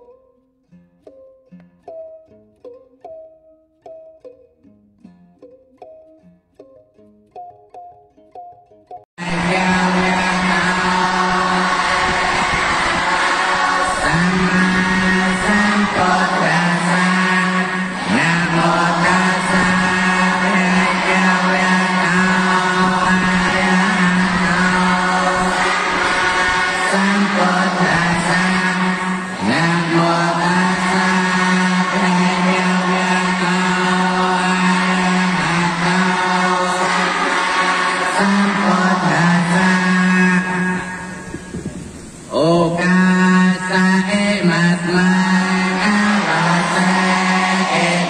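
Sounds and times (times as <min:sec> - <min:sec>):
monks chanting on one pitch: 0:09.2 - 0:41.6, 0:42.3 - 0:48.0.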